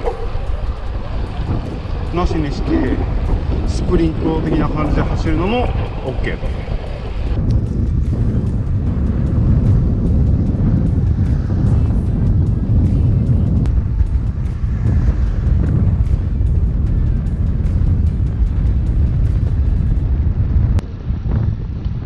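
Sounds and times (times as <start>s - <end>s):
background music: 0.0s - 20.8s
bike rolling rumble: 0.0s - 22.0s
wind buffeting microphone: 0.0s - 22.0s.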